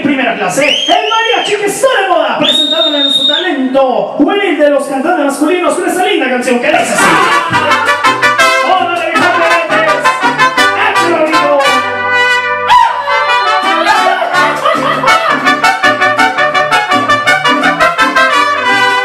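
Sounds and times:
bass guitar line: 0:06.8 - 0:19.0
strummed guitar: 0:07.0 - 0:11.8, 0:13.2 - 0:19.0
trumpets playing melody: 0:07.0 - 0:19.0.

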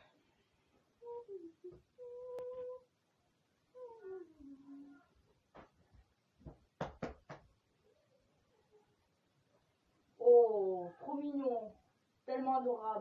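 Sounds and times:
girl humming: 0:01.0 - 0:02.9, 0:03.8 - 0:05.1.

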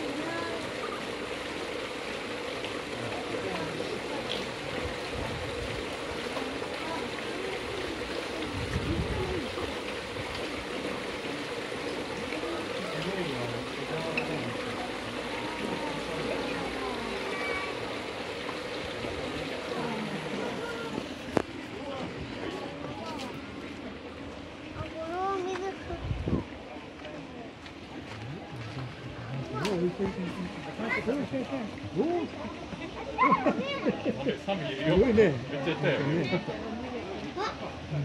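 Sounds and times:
people talking: 0:00.0 - 0:01.1, 0:02.8 - 0:05.6, 0:06.2 - 0:10.0, 0:10.6 - 0:18.1, 0:18.8 - 0:24.0, 0:24.8 - 0:38.0
water trickling over rocks: 0:00.0 - 0:32.7.

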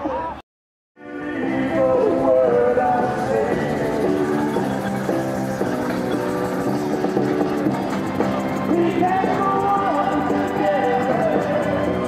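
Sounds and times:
music playing: 0:01.0 - 0:12.0
steam traction engines running: 0:02.5 - 0:12.0.

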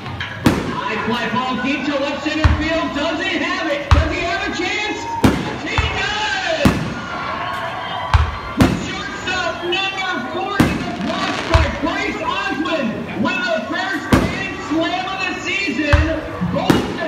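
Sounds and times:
fireworks booming: 0:00.0 - 0:09.6, 0:10.4 - 0:12.4, 0:14.0 - 0:17.0.

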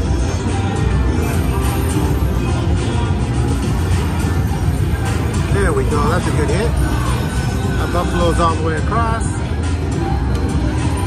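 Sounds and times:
slot machine music and effects: 0:01.0 - 0:09.8.

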